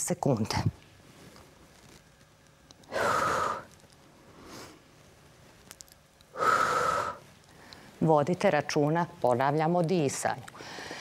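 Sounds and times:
woman exhaling hard with effort: 2.9s - 3.6s.

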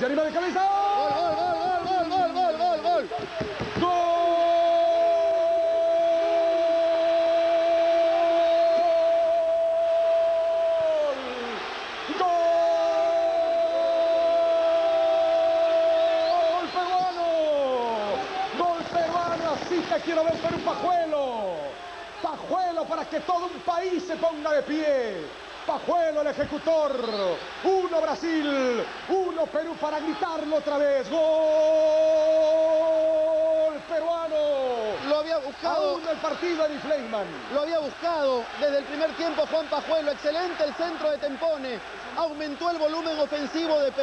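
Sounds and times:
commentator's drawn-out goal cry: 0.0s - 23.1s
excited shouting: 0.2s - 22.8s, 24.8s - 44.0s.

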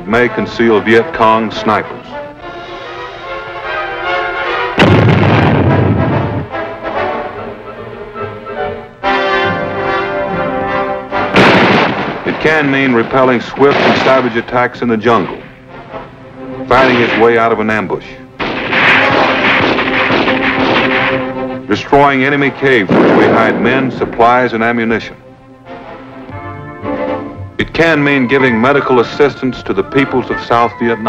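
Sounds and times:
background music: 0.0s - 31.0s
loud explosion with rumble: 4.8s - 6.5s, 11.4s - 14.4s, 18.4s - 21.2s, 22.8s - 24.2s
rifle gunfire rattle: 11.4s - 14.6s, 18.4s - 21.4s, 22.9s - 24.2s.

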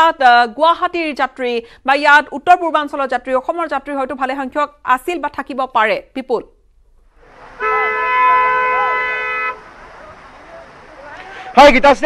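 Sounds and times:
outdoor background noise: 0.0s - 12.0s
horn held note: 7.6s - 9.7s.

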